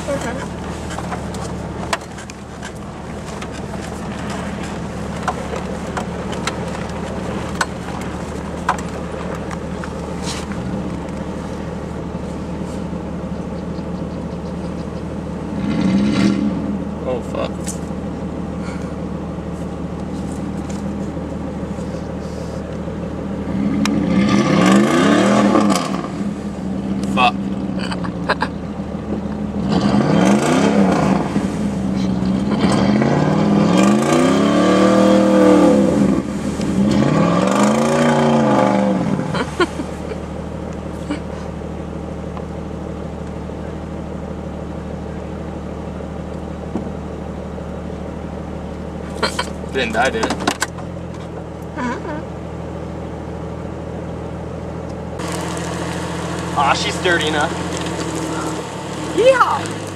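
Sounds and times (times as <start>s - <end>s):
engine revving: 0.0s - 19.0s, 21.7s - 41.6s, 55.1s - 59.9s
tires spinning in mud: 0.0s - 52.4s, 55.1s - 59.9s
engine idling: 0.0s - 59.9s.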